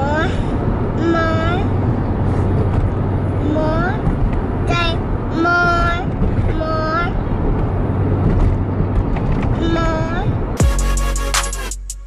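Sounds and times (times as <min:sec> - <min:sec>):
car cabin road and engine noise: 0:00.0 - 0:11.7.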